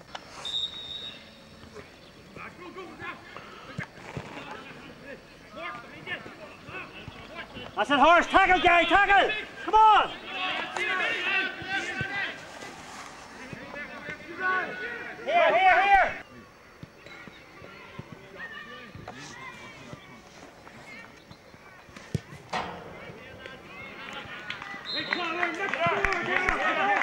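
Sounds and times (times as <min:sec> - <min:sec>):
referee whistle blast: 0:00.4 - 0:01.4, 0:24.8 - 0:25.4
raised call: 0:00.4 - 0:16.3, 0:22.5 - 0:27.0
players shouting: 0:01.0 - 0:16.3, 0:20.9 - 0:27.0.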